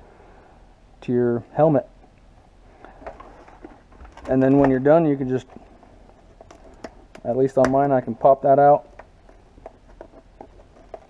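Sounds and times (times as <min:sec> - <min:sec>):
helmet handling taps and rustles: 0:02.0 - 0:11.0.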